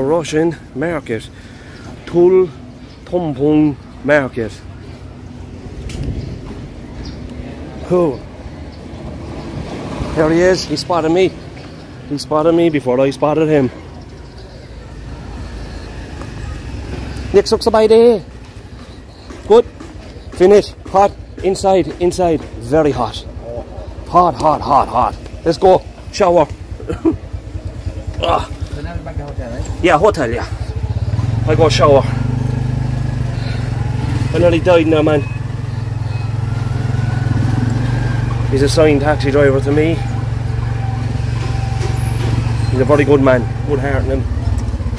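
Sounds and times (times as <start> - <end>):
small motorcycle engine rumble: 0.0 - 44.9
small engine humming: 26.6 - 44.9.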